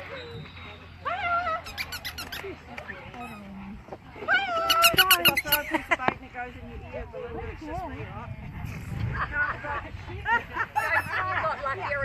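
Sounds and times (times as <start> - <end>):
squeaky toy squeaking: 1.6 - 2.5, 3.1 - 3.5, 4.6 - 5.7, 10.8 - 11.1.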